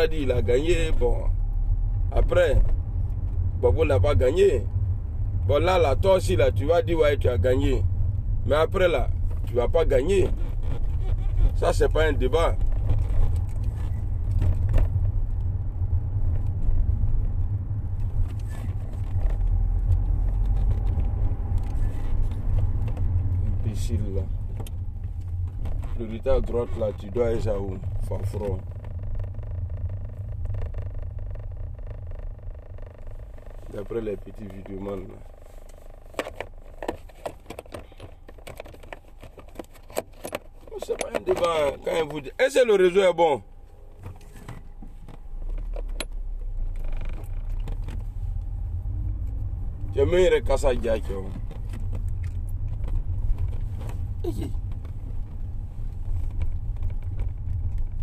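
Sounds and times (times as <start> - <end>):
car engine rumble: 0.0 - 58.0
road noise inside car: 0.0 - 58.0
light clicks and rattles: 7.6 - 15.6, 16.2 - 42.9, 44.0 - 58.0.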